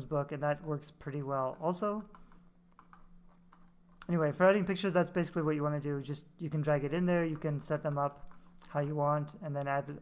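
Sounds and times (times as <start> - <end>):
low steady hum: 0.0 - 10.0
computer keys clicking: 1.8 - 4.1, 7.0 - 9.0.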